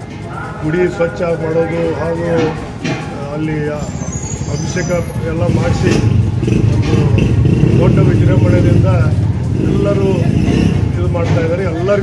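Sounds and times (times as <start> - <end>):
vehicle engine running: 4.8 - 12.0.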